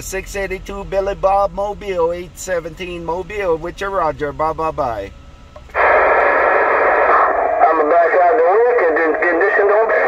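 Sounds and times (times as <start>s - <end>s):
tinny radio static: 5.6s - 10.0s
faint voice over radio: 7.0s - 10.0s.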